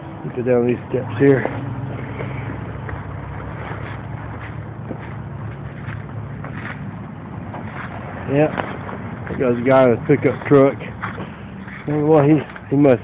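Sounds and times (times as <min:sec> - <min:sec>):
vehicle engine running: 0:00.0 - 0:13.0.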